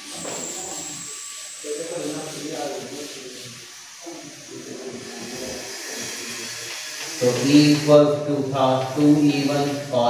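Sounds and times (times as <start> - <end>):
duster rubbing chalkboard: 0.0 - 10.0.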